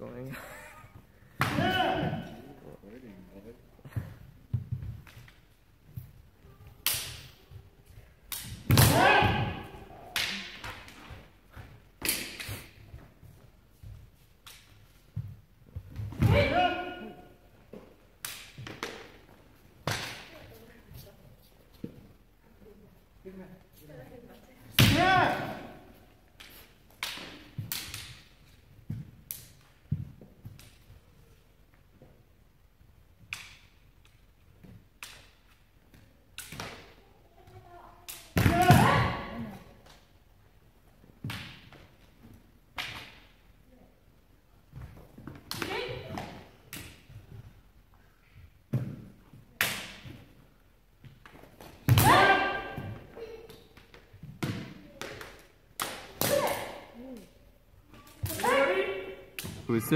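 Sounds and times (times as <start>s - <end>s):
people yelling: 1.5s - 2.4s, 8.8s - 10.0s.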